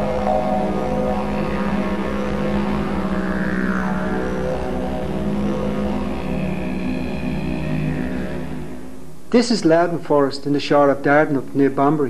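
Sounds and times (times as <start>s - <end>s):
didgeridoo drone music: 0.0s - 9.3s.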